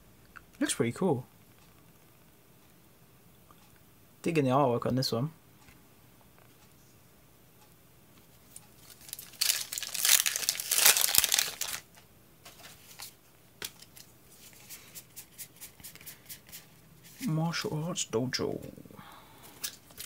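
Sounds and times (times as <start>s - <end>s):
foil wrapper crinkling and tearing: 8.8s - 12.0s.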